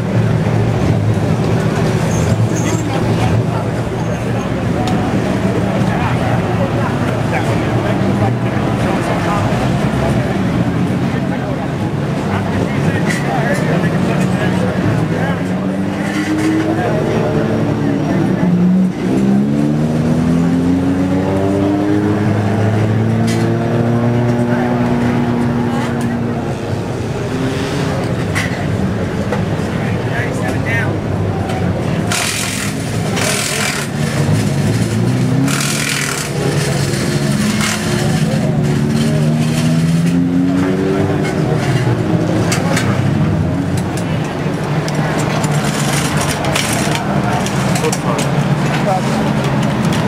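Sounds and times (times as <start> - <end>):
race car engine revving: 0.0 - 50.0
race car engines running: 0.0 - 50.0.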